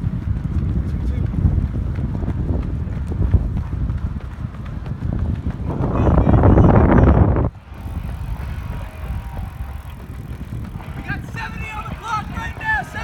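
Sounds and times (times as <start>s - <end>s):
footsteps on rubber track: 0.0s - 13.0s
voices: 5.6s - 13.0s.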